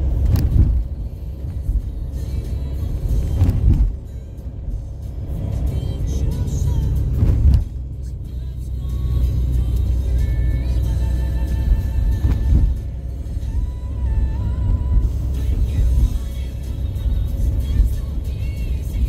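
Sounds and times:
car engine and road rumble: 0.0s - 19.0s
music playing: 0.0s - 19.0s.

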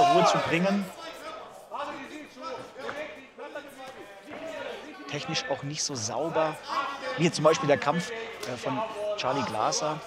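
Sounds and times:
men shouting: 0.0s - 0.6s
crowd chatter: 0.0s - 10.0s.

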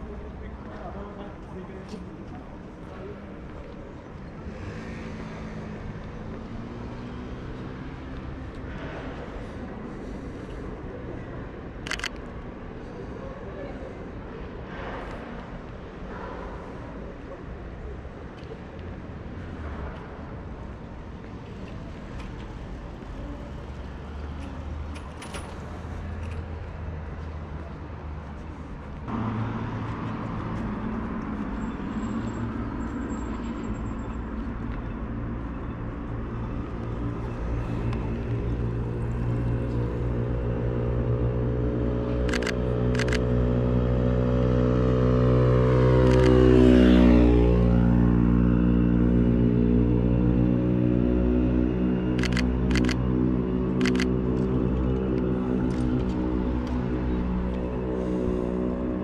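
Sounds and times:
city street rumble: 0.0s - 59.0s
camera shutter clicks: 11.9s - 12.2s, 52.2s - 53.0s, 53.8s - 54.1s
vehicle passing close: 36.6s - 59.0s.

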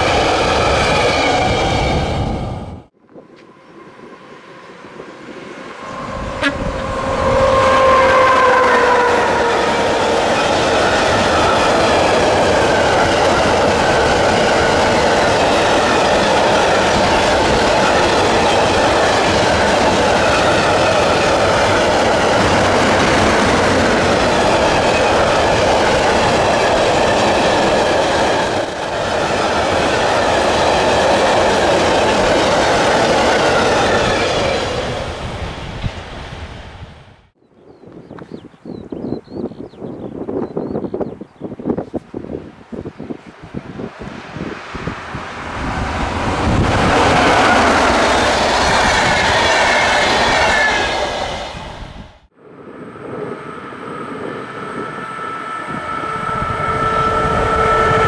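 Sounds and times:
train wheels on rails: 0.0s - 37.4s, 42.8s - 58.0s
locomotive horn blast: 3.4s - 10.0s, 55.3s - 58.0s.

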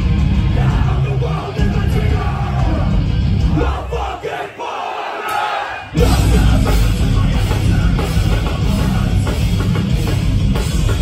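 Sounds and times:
heavy metal band playing: 0.0s - 4.6s, 5.3s - 11.0s
concert crowd shouting: 0.0s - 10.1s.

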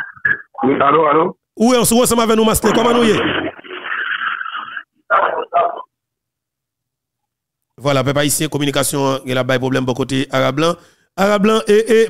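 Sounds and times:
noisy telephone line: 0.0s - 1.4s, 2.5s - 6.0s.

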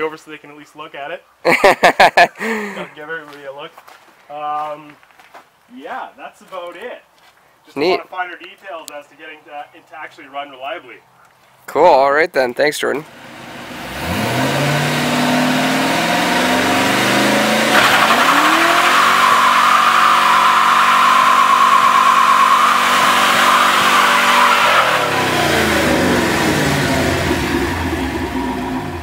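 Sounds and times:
car engine revving: 13.1s - 29.0s
tyres squealing: 17.6s - 26.2s.

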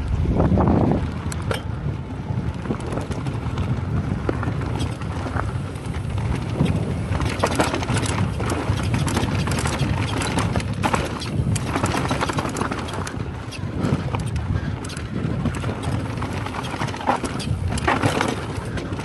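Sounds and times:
bike clicks and rattles: 0.0s - 19.0s
wind noise on microphone: 0.0s - 19.0s
tyre rumble over dirt: 2.6s - 19.0s.

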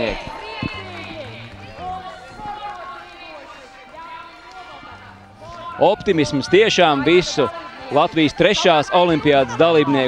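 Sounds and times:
crowd chattering and calling out: 0.0s - 10.0s.

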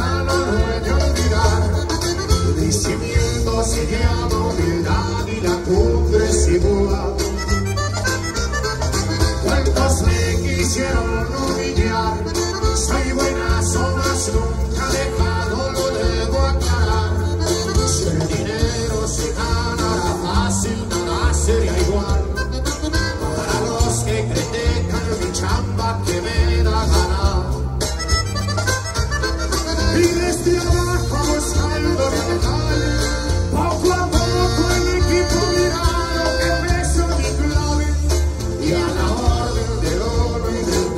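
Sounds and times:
accordion lead: 0.0s - 40.9s
drums steady beat: 0.0s - 40.9s
live band through loudspeakers: 0.0s - 40.9s.

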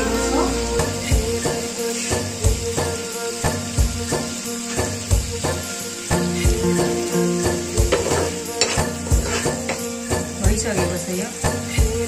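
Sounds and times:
background music with beat: 0.0s - 12.0s
oil sizzling: 0.0s - 12.0s
metal spoon scraping pan: 7.8s - 10.3s.

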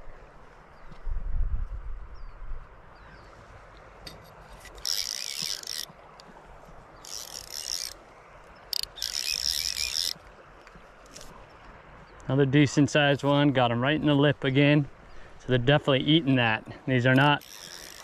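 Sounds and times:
fishing reel drag ratcheting: 4.1s - 6.3s, 7.0s - 8.0s, 8.6s - 11.4s, 17.1s - 18.0s.

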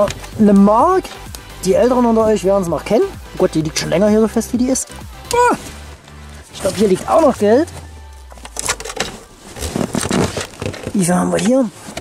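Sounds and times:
gloved hand scraping car trim: 5.6s - 12.0s.

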